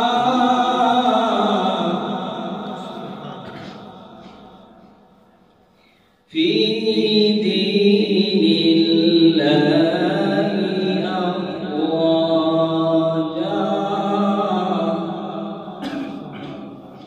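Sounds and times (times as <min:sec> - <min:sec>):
man chanting melodically: 0:00.0 - 0:04.8, 0:06.3 - 0:17.0
man breathing: 0:05.6 - 0:06.3.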